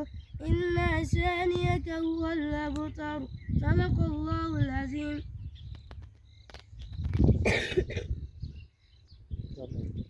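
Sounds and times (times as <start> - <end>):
person coughing: 7.4 - 8.2.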